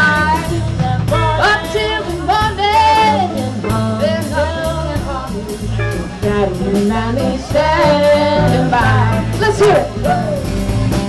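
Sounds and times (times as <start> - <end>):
drum kit beat: 0.0 - 11.0
guitar: 0.0 - 11.0
upright bass: 0.0 - 11.0
women singing: 0.0 - 11.0.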